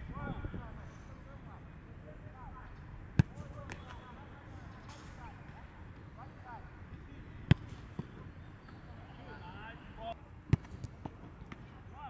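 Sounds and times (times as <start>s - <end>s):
football kicked thump: 3.1s - 4.0s, 7.4s - 8.2s, 10.5s - 11.2s.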